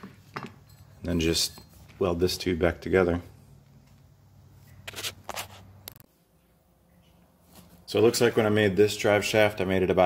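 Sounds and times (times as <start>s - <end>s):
short scrapes or clicks: 4.7s - 6.1s.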